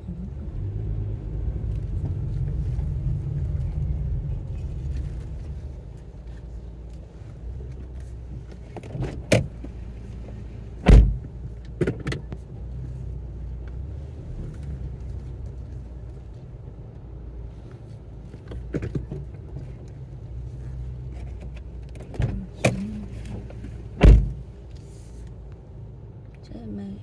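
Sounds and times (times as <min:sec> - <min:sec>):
car engine idling: 0:00.0 - 0:27.0.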